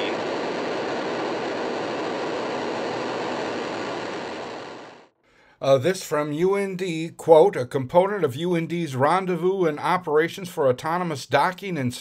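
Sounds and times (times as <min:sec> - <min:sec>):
rocket engines rumbling: 0:00.0 - 0:05.1.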